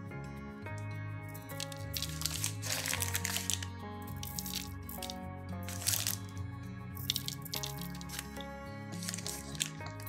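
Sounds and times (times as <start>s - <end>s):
music with held notes: 0.0s - 10.0s.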